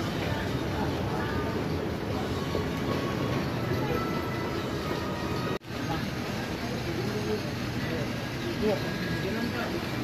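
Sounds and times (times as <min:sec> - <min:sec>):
market din: 0:00.0 - 0:10.0.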